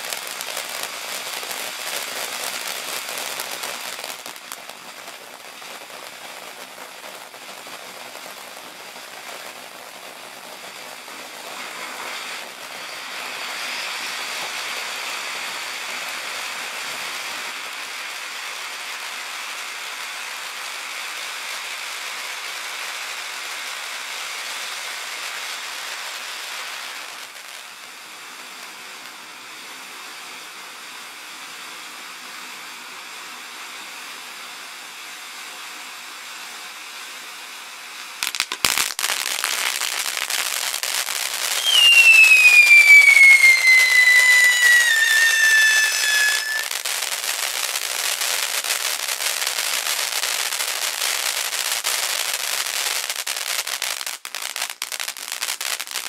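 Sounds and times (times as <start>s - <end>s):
falling firework whistle: 0.0s - 56.0s
firework crackling: 0.0s - 56.0s
firework fountain hissing: 0.0s - 56.0s.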